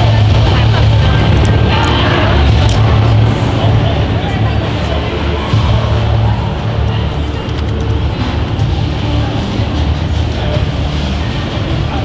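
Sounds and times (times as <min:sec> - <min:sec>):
faint voices: 0:00.0 - 0:12.0
low droning rumble: 0:00.0 - 0:12.0.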